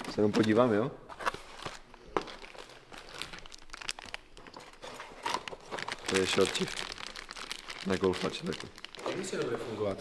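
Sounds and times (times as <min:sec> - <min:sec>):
plastic packaging crinkling: 0:01.2 - 0:10.0.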